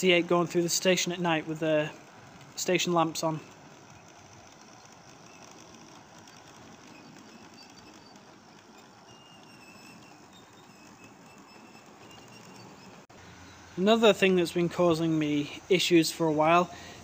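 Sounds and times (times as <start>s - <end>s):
model train rattling: 0.0s - 17.0s
wheels clicking on rails: 0.0s - 17.0s.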